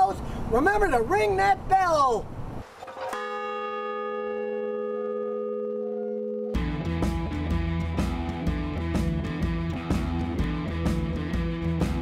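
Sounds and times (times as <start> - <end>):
large bronze bell ringing: 3.1 - 6.8.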